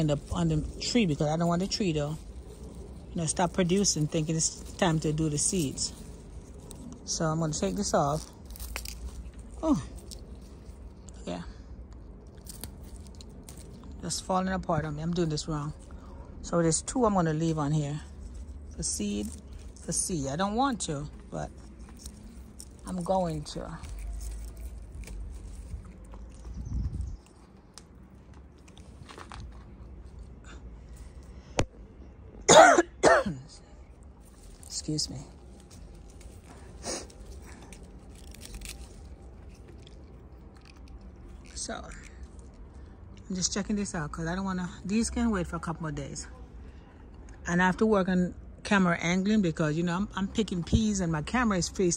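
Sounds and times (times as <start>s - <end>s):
pea pods snapping: 0.0s - 11.2s, 11.9s - 14.2s, 18.2s - 29.7s, 34.2s - 42.0s
leaves and stems rustling: 0.0s - 31.6s, 34.0s - 44.0s.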